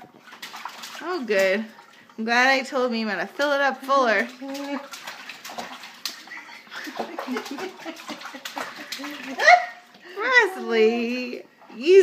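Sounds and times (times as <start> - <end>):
baby splashing water: 0.0 - 12.0
baby laughing: 6.8 - 9.9.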